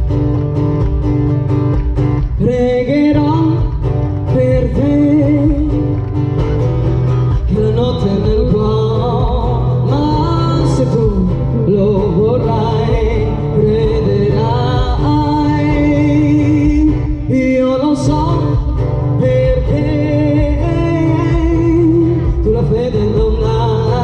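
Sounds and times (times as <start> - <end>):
acoustic guitar: 0.0 - 24.0
woman singing: 2.2 - 6.0, 7.3 - 24.0.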